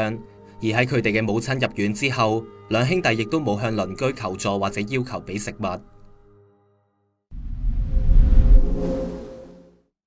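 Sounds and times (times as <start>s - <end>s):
deep rumbling whoosh: 7.3s - 9.4s.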